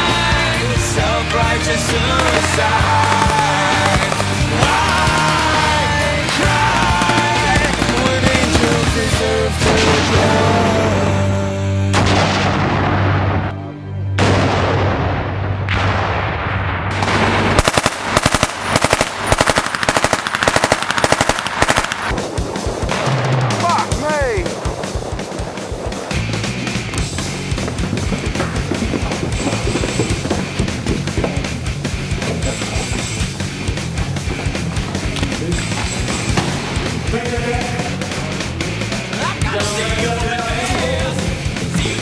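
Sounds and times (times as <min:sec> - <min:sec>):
loud rock music: 0:00.0 - 0:16.0, 0:22.1 - 0:42.0
machine-gun fire: 0:02.1 - 0:10.3, 0:11.9 - 0:13.5, 0:14.2 - 0:32.2.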